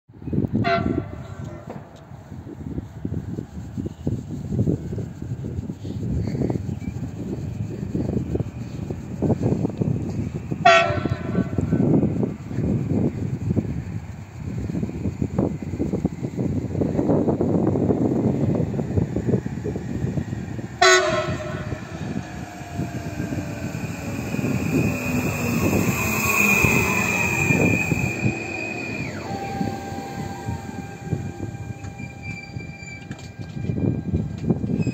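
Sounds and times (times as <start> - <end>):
low train rumble: 0.1 - 34.9
train horn blasts: 0.6 - 1.7, 10.6 - 11.8, 20.8 - 21.9, 26.8 - 34.7.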